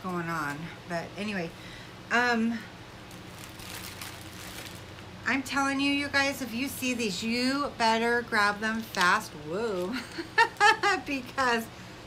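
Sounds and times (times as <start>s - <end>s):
low steady hum: 0.0s - 12.0s
rustling of shopping bag: 3.1s - 5.2s, 8.8s - 10.6s.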